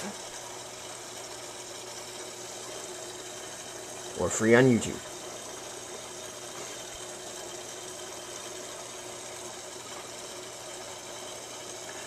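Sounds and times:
aquarium pump humming: 0.0 - 12.0.

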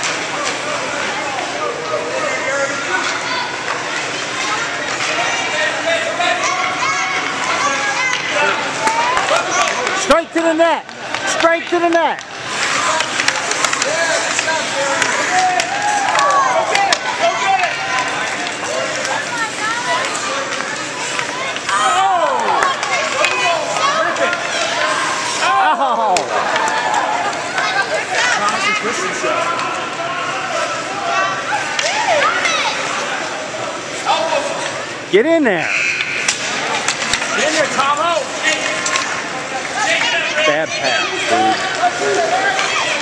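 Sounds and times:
hockey sticks clacking: 0.0 - 1.5, 2.8 - 30.8, 31.7 - 33.1, 35.7 - 43.0
skate blades scraping ice: 11.0 - 21.9
people shouting: 12.6 - 20.2, 21.6 - 28.6.

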